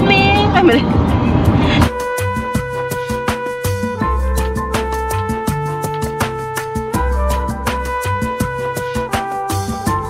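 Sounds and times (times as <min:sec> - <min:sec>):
low road rumble: 0:00.0 - 0:10.0
background music with regular beat: 0:00.5 - 0:10.0.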